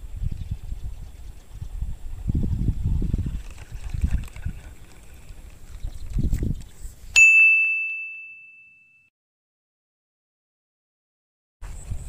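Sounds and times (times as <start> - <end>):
bell-like ding: 7.2 - 9.1.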